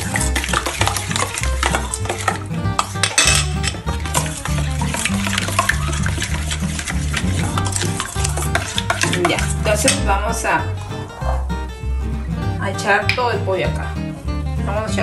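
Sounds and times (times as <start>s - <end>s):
spoon clinking against metal bowl: 0.0s - 10.1s
spoon stirring liquid: 0.0s - 10.1s
background music with bass line: 0.0s - 15.0s.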